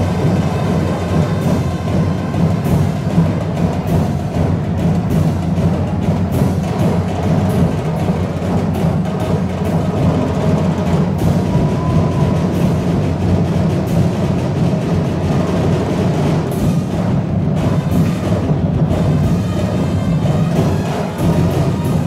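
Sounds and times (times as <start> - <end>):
percussion ensemble festival music: 0.0 - 22.0.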